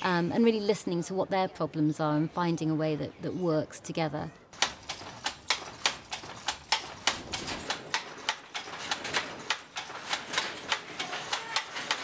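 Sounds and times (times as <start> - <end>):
handloom wooden clacks: 4.6 - 12.0.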